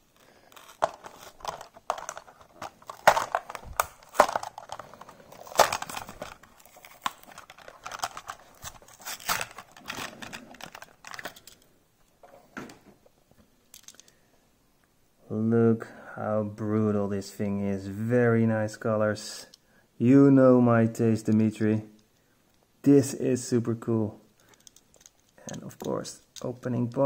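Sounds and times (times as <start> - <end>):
plastic packaging crinkling and tearing: 0.2 - 11.6.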